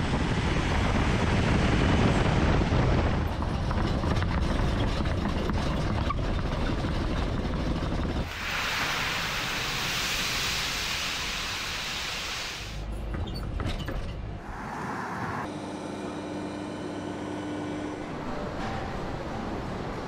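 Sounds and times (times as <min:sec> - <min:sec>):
steady hiss: 0:08.3 - 0:12.8.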